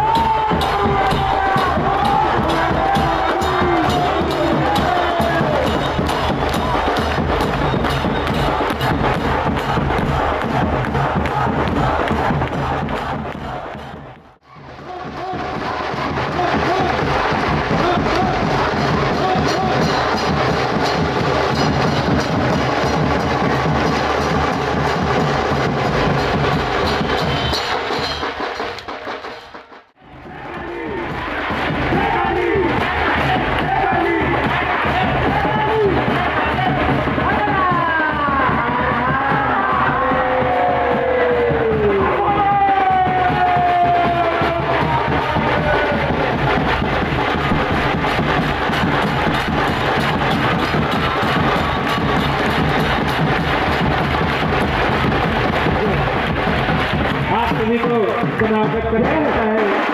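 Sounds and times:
large crowd cheering: 0.0s - 59.9s
loud music: 0.0s - 59.9s.

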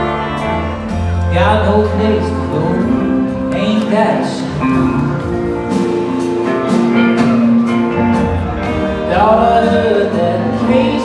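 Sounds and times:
guitars and keyboards sustained notes: 0.0s - 11.0s
live rock band playing: 0.0s - 11.0s
steady drum beat: 0.4s - 11.0s.

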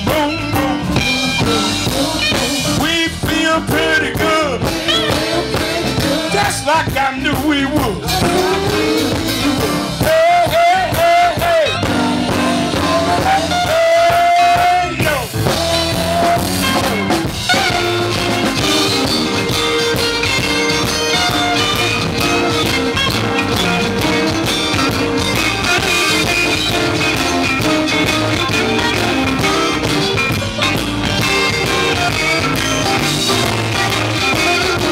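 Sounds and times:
blues band playing: 0.0s - 34.9s
electric guitar lead: 0.0s - 34.9s.

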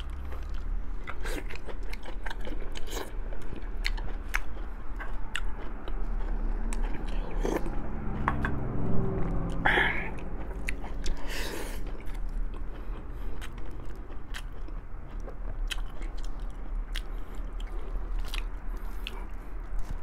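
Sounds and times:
person chewing meat: 0.0s - 20.0s.

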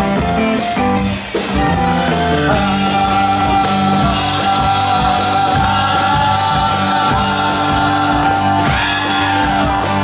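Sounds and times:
drums: 0.0s - 10.0s
electric guitars: 0.0s - 10.0s
voices singing together: 2.5s - 10.0s.

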